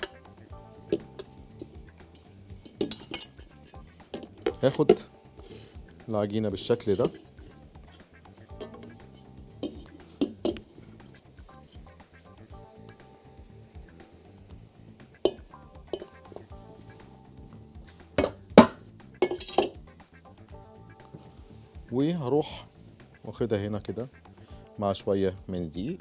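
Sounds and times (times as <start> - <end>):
spatula scraping and tapping bowl: 0.0 - 0.2, 0.8 - 5.8, 6.6 - 12.3, 15.2 - 16.9, 17.9 - 19.8
soft background music: 0.0 - 26.0
mixing bowl clanking: 0.9 - 5.1, 6.6 - 7.6, 8.5 - 9.0, 15.3 - 16.2.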